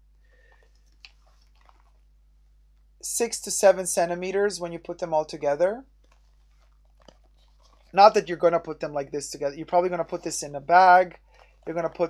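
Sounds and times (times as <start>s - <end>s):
person speaking: 3.0s - 5.8s, 7.9s - 12.0s.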